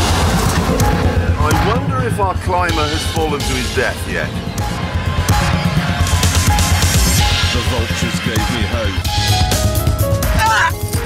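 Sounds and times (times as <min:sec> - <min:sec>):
background music: 0:00.0 - 0:11.0
car engine running: 0:00.0 - 0:11.0.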